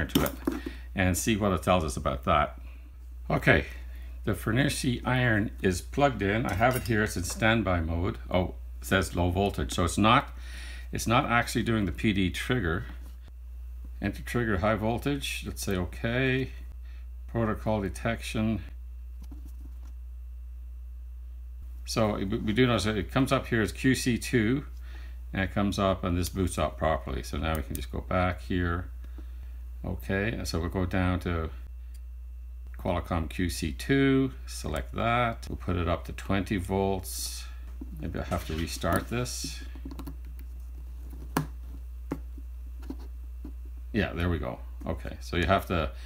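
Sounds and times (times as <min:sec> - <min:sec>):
low electrical hum: 0:00.0 - 0:46.0.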